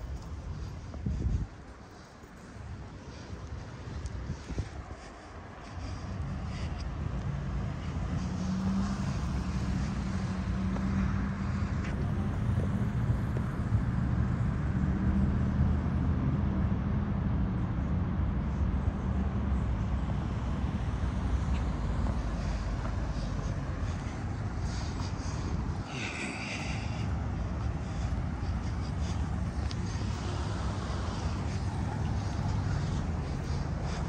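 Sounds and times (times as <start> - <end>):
vehicle engines humming: 0.0 - 34.0.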